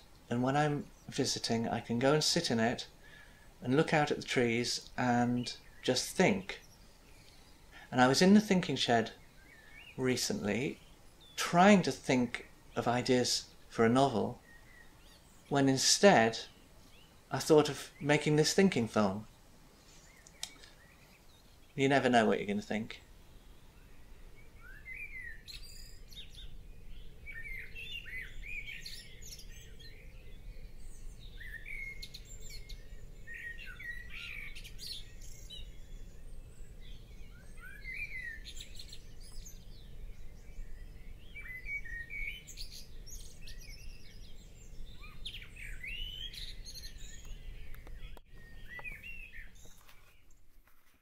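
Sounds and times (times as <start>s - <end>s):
songbirds chirping: 0.0s - 51.0s.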